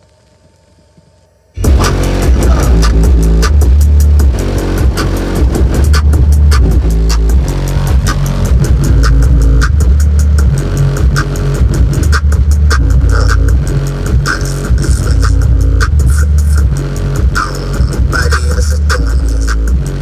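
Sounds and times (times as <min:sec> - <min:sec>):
bass-heavy music through subwoofers: 0:01.6 - 0:20.0.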